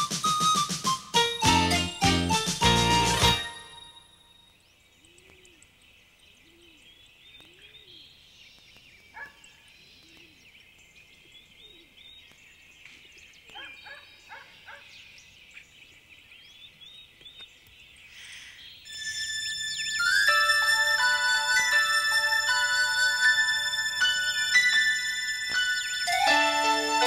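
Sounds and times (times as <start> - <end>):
small birds chirping: 3.8 - 18.9.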